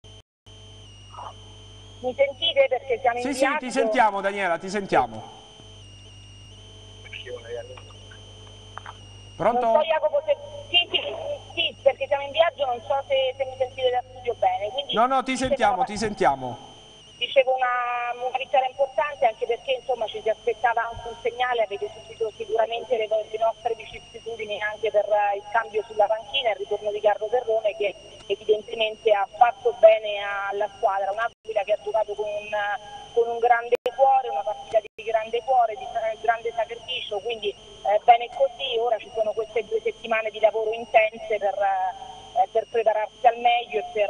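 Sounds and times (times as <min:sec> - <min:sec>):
high whining tones on phone line: 0:00.0 - 0:44.0
electrical hum: 0:00.1 - 0:44.0
woman speaking over telephone: 0:02.0 - 0:04.1, 0:07.1 - 0:07.8, 0:09.6 - 0:15.0, 0:17.2 - 0:44.0.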